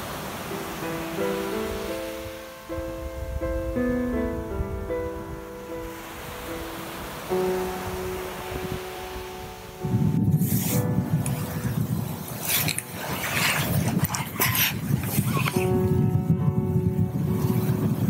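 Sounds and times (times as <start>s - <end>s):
waves breaking on beach: 0.0s - 3.2s, 5.1s - 16.1s
soft background music: 0.2s - 18.0s.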